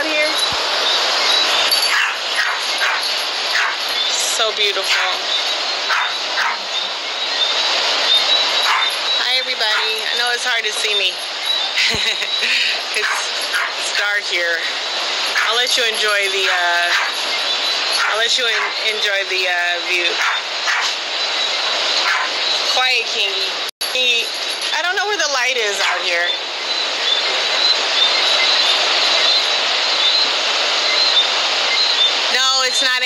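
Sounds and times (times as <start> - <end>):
person speaking: 0.0 - 0.6, 4.1 - 5.3, 9.2 - 11.2, 11.8 - 14.9, 15.5 - 17.0, 18.1 - 20.2
ocean surf hissing: 0.0 - 23.7, 25.6 - 33.0.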